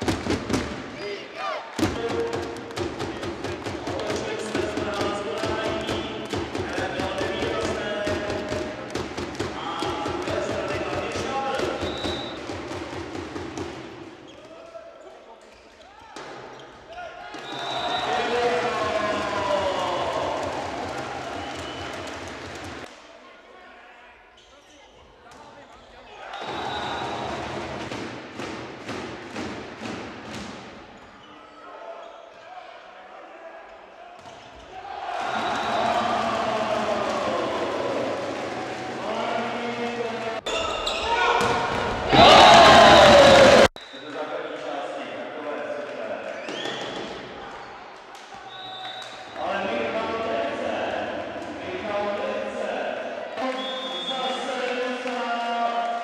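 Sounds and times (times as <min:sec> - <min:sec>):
sharp repeated claps or thumps: 0:00.0 - 0:00.9, 0:01.8 - 0:14.0, 0:27.4 - 0:30.8
spectators clapping and cheering: 0:17.7 - 0:22.9, 0:34.9 - 0:40.4, 0:42.0 - 0:43.8, 0:53.4 - 0:56.0.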